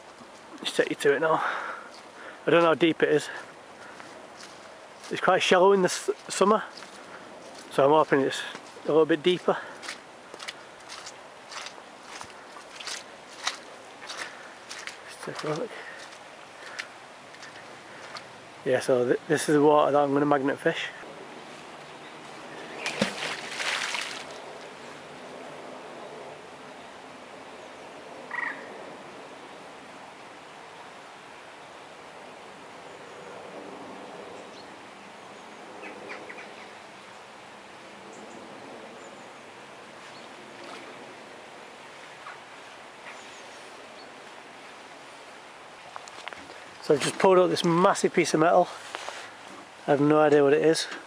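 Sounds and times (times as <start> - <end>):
faint background hiss: 0.0 - 51.0
faint bird calls: 9.5 - 18.4, 27.6 - 28.9, 34.4 - 37.0, 42.1 - 44.2.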